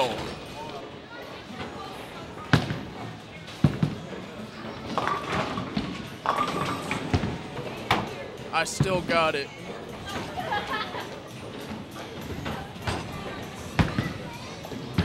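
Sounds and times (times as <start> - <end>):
balls and pins clattering: 3.5 - 8.2
bowling ball rolling: 4.0 - 7.8
voices: 8.5 - 11.3.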